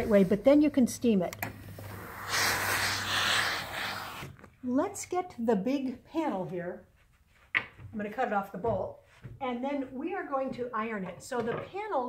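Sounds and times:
steam iron hissing: 0:01.7 - 0:04.4.

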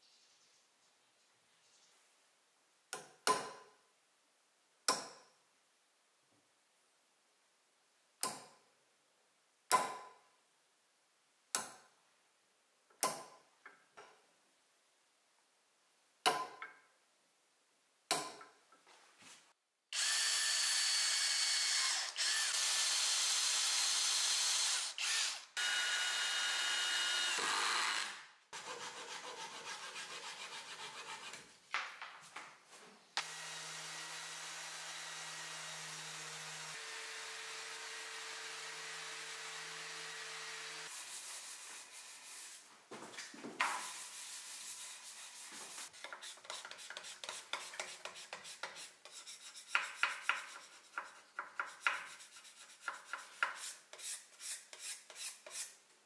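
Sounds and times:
cordless drill driving screw: 0:20.0 - 0:28.2
sandpaper rubbing on wood: 0:28.6 - 0:31.4, 0:40.9 - 0:42.6, 0:43.7 - 0:55.8.

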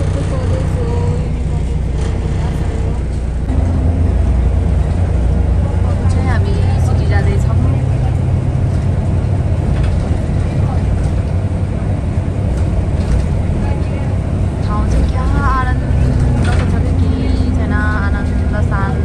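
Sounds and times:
bus engine and road noise: 0:00.0 - 0:19.0.

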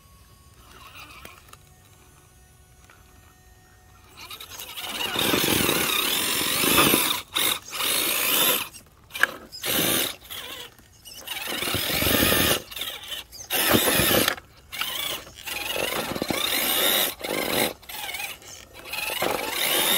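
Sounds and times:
electric motor whining: 0:00.0 - 0:19.9
tires on rock and dirt: 0:04.1 - 0:19.9.

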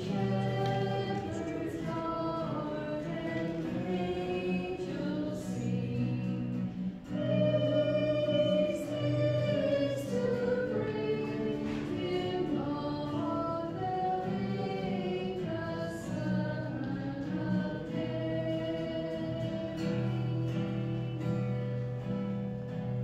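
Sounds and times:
choir singing a hymn: 0:00.0 - 0:21.4.

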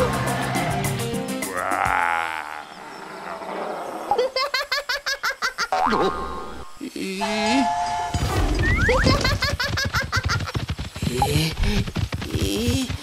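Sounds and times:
background music: 0:00.0 - 0:02.0.

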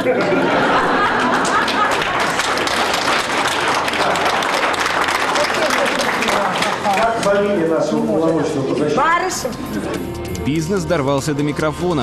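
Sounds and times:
audience applauding: 0:00.6 - 0:07.7.

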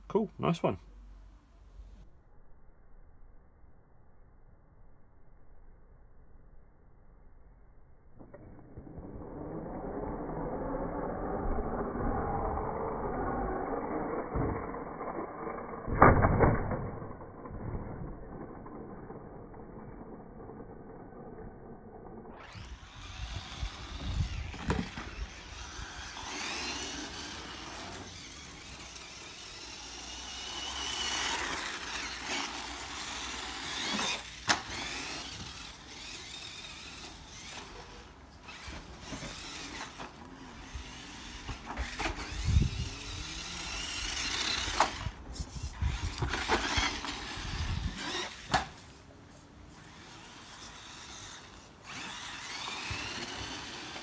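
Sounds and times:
toy car motor whining: 0:08.2 - 0:16.0, 0:16.8 - 0:48.9, 0:49.7 - 0:54.0
toy car landing knocks: 0:15.9 - 0:18.1, 0:24.2 - 0:27.1, 0:33.8 - 0:35.7
tyre noise on concrete: 0:22.4 - 0:49.0.

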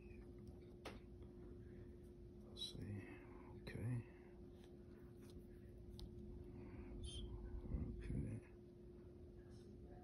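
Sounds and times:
man whispering: 0:02.5 - 0:04.4, 0:06.9 - 0:08.6.

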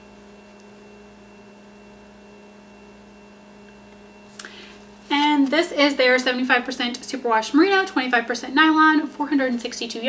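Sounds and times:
faint high whine: 0:00.0 - 0:10.0
low electrical hum: 0:00.0 - 0:10.0.

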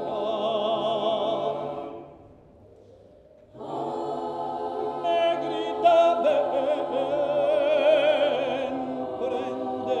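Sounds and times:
choir singing a cappella: 0:00.0 - 0:02.3, 0:03.5 - 0:10.0.

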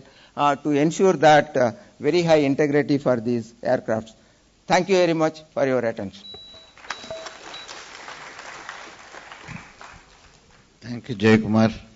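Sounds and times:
audience applauding: 0:06.8 - 0:10.7.

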